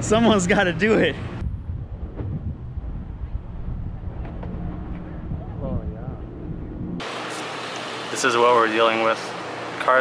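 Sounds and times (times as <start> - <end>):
wind rumbling on microphone: 0.0 - 7.0
steady low hum: 0.0 - 7.2.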